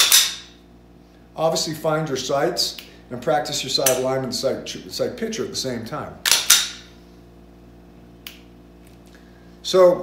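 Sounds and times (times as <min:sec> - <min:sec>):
faint steady hum: 0:00.0 - 0:10.0.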